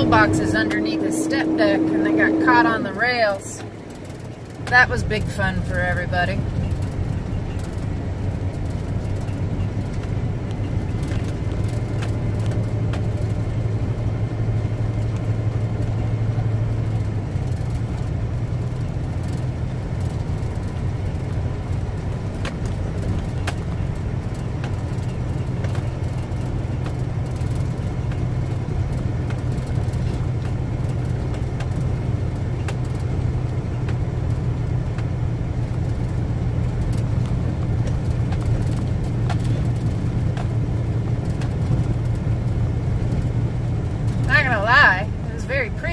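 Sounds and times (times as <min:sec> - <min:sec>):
diesel engine running: 0:00.0 - 0:45.9.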